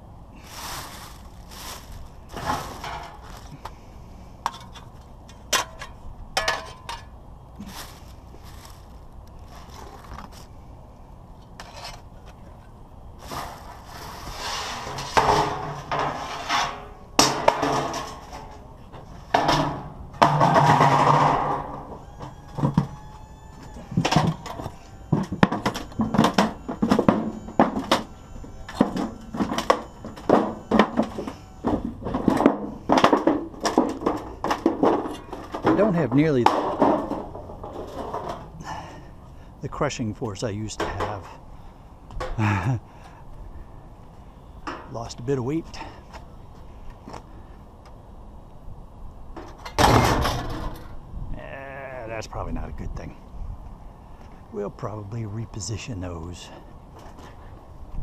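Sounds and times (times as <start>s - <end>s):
sheet metal crunching underfoot: 0.4s - 10.5s, 13.2s - 39.0s, 49.4s - 51.0s
sheet metal scraping: 13.4s - 18.6s.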